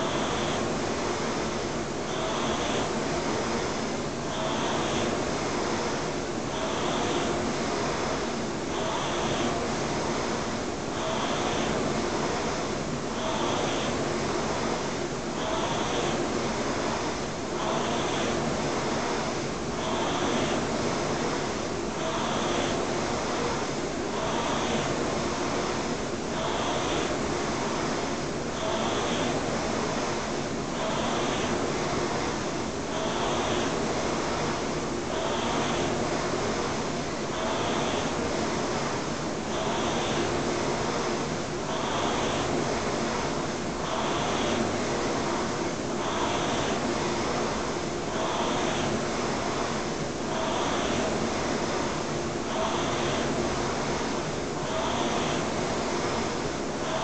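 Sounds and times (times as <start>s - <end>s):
rowing machine fan whirring: 0.0s - 57.0s.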